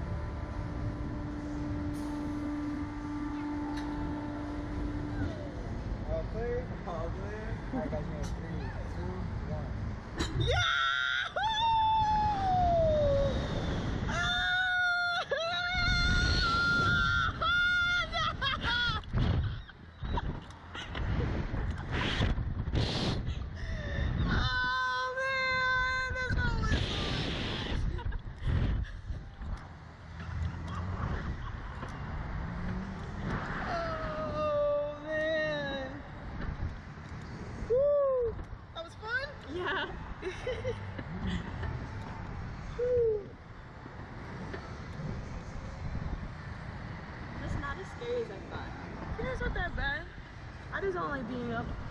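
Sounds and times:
riders screaming: 10.4s - 19.7s
wind rushing over microphone: 11.4s - 51.9s.

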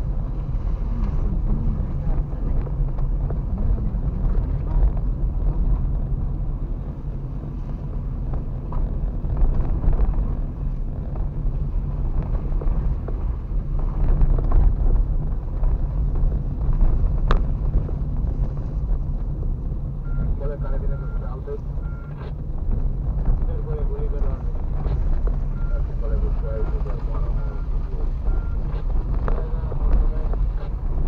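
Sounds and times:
car engine and tyre rumble: 0.0s - 31.0s.

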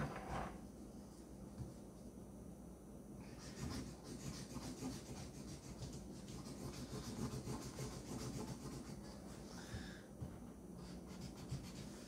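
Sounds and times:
marker scribbling on paper: 3.3s - 9.5s, 10.8s - 12.0s.

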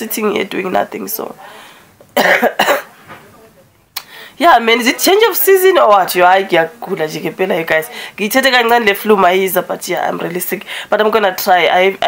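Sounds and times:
woman coughing: 2.2s - 3.0s.

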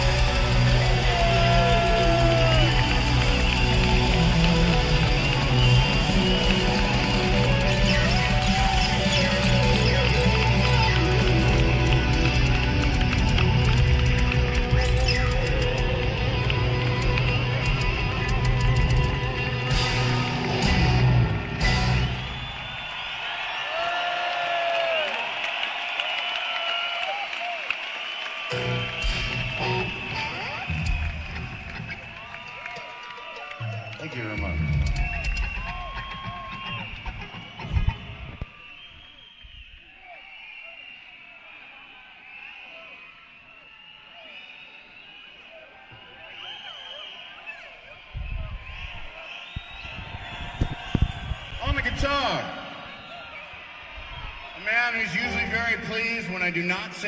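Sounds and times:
rock band with heavy guitar and drums: 0.0s - 22.5s, 34.5s - 38.4s
crowd cheering and whistling: 0.0s - 57.0s.

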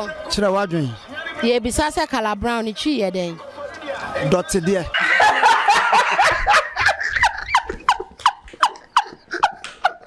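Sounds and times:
man and woman laughing: 5.0s - 10.0s.

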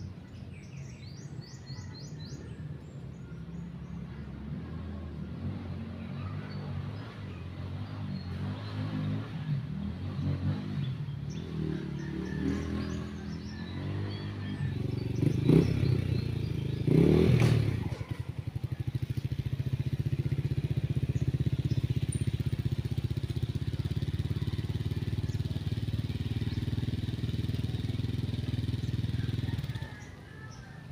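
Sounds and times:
motorcycle engine revving and idling: 0.0s - 30.9s.

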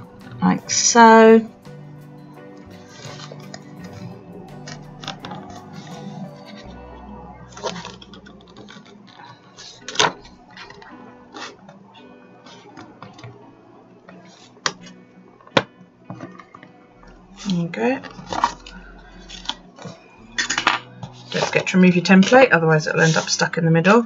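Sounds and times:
faint background music: 0.0s - 24.0s.

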